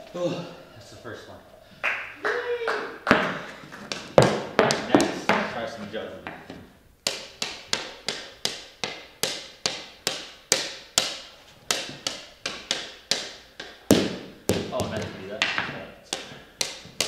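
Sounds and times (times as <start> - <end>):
ball bouncing off hockey stick: 3.1 - 5.6, 6.2 - 17.0.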